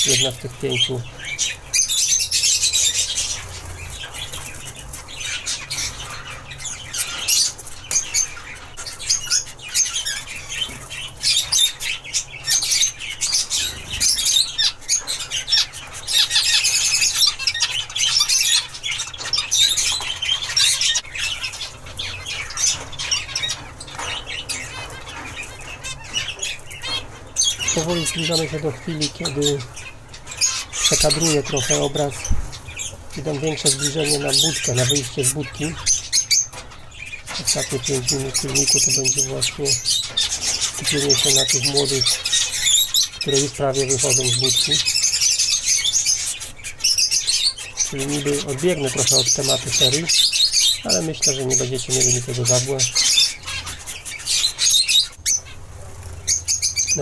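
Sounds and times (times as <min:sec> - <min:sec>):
finches chirping: 0:00.0 - 0:57.0.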